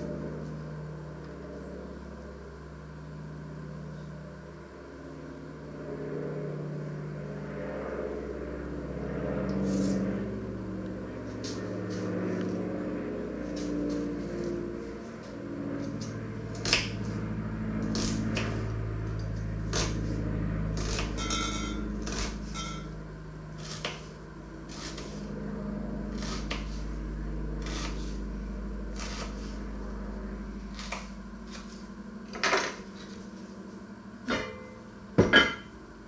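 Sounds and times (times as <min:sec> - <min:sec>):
low background hum: 0:00.0 - 0:36.0.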